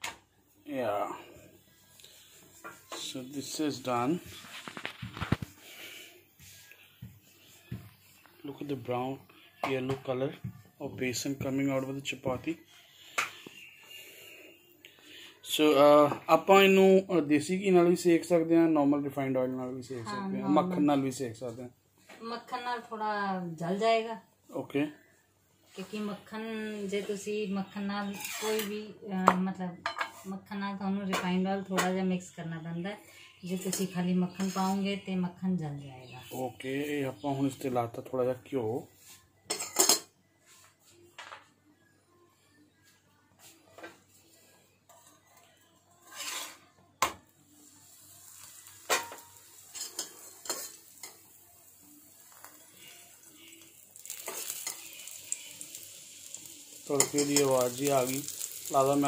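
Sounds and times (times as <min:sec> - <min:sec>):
metal spatula scraping a griddle: 0:28.0 - 0:28.7, 0:34.4 - 0:34.8, 0:44.9 - 0:46.8, 0:48.2 - 0:58.9
oil sizzling in a pan: 0:47.5 - 0:59.0.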